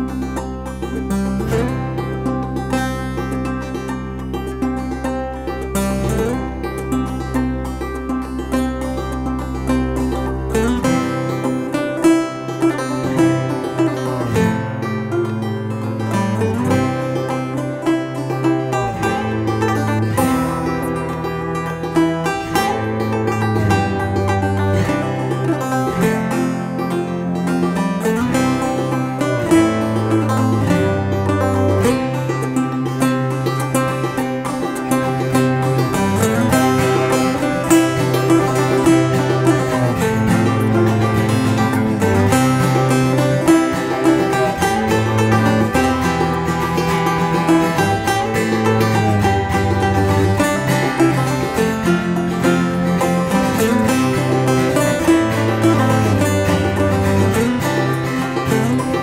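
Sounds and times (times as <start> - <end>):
acoustic guitar picking: 0.0 - 59.0
banjo picking: 0.0 - 59.0
bowed cello low notes: 0.0 - 59.0.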